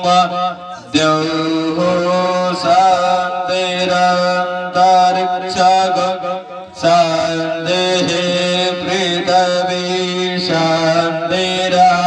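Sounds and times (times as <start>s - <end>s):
man chanting into a microphone: 0.0s - 12.0s.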